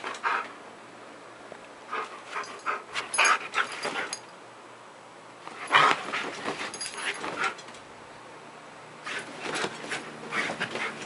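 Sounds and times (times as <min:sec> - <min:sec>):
dog thrashing in bedding: 0:09.0 - 0:11.0.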